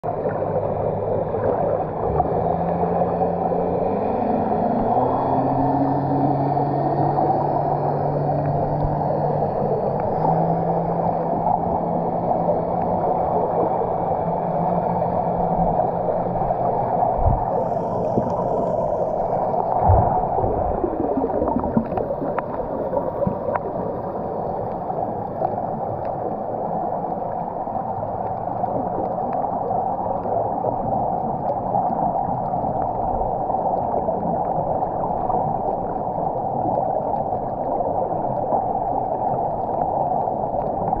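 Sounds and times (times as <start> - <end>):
low hum: 0.0 - 36.2
underwater water rush: 0.0 - 41.0.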